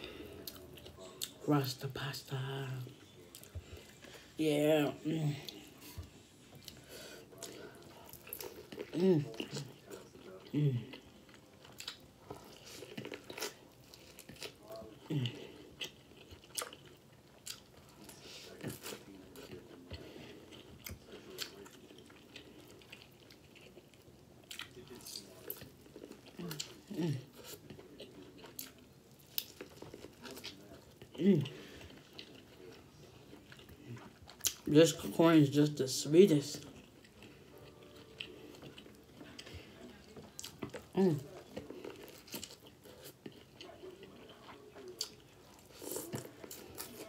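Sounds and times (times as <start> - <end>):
person chewing corn: 0.0 - 47.0.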